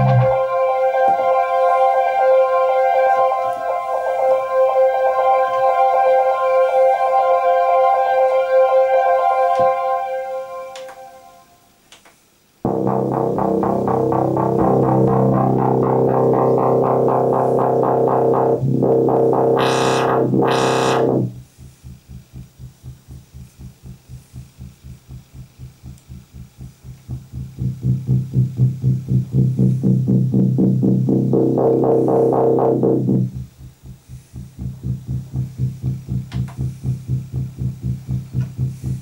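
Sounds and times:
synthesizer chord fluttering pulse: 0.0s - 11.5s, 12.6s - 21.6s, 26.0s - 38.8s.

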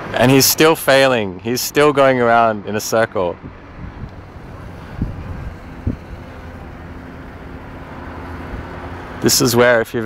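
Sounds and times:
distant car engine hum: 0.0s - 10.0s
wind rumbling on microphone: 3.4s - 8.9s.

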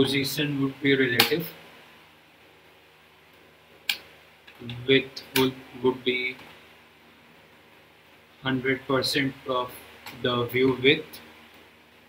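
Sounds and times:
man speaking: 0.0s - 1.6s, 4.6s - 6.5s, 8.4s - 11.3s.

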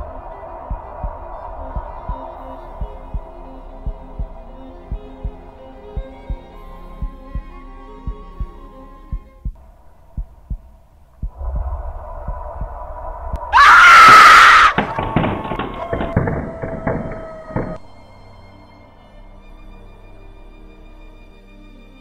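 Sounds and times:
heartbeat thumps: 0.0s - 17.9s
suspense music: 0.0s - 22.0s
loud scream: 12.4s - 17.9s.

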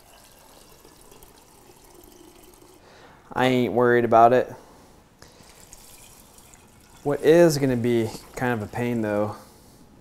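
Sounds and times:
liquid trickling into a jar: 0.0s - 2.9s, 5.4s - 9.2s.

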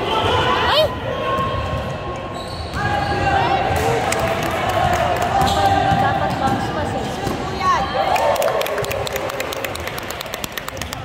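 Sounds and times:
spectators clapping rapidly: 4.0s - 5.5s, 8.0s - 11.0s.

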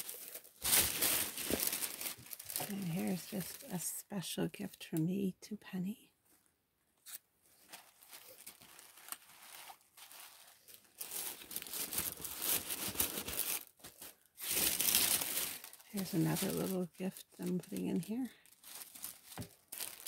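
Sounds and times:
paper and cellophane rustling: 0.0s - 3.9s, 7.1s - 20.0s.

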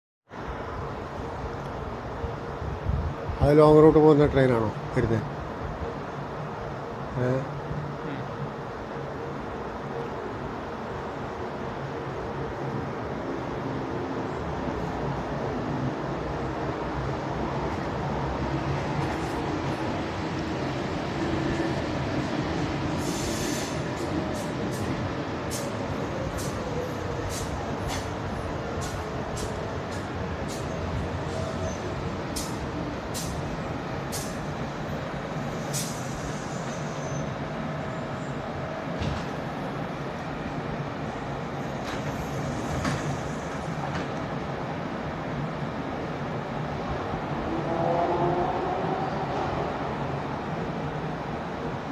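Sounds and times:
electric train rumbling: 0.3s - 51.9s
faint train whine: 0.3s - 51.9s.

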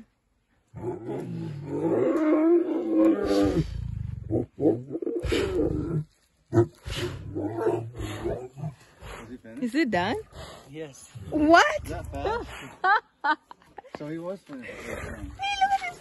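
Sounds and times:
lion roaring: 0.8s - 9.3s, 10.2s - 12.5s
lion grunting: 0.8s - 9.4s, 10.1s - 12.7s.

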